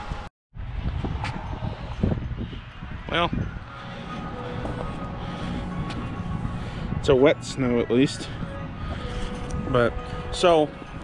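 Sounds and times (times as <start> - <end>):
footsteps on wet concrete: 3.8 - 6.3
camera handling and wind noise: 8.9 - 9.8.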